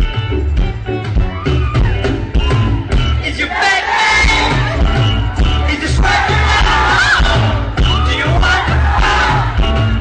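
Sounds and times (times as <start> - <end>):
crowd shouting and cheering: 0.0 - 10.0
live rock band playing: 0.0 - 10.0.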